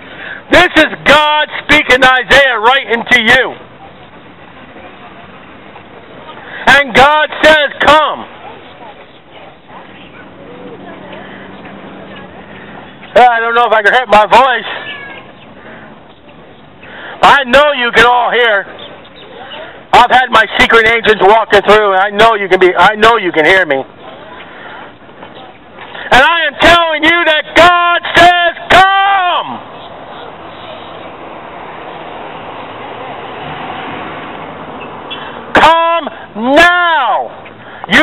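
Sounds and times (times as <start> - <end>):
outdoor market background noise: 0.0 - 38.0
amplified voice: 26.1 - 29.6, 35.5 - 37.3.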